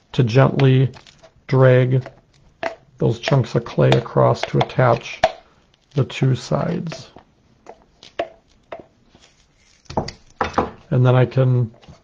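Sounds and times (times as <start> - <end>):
clay chunks dragging: 0.0 - 12.0
clay tool tapping and knocking: 2.0 - 5.5, 6.6 - 9.0, 9.8 - 10.9.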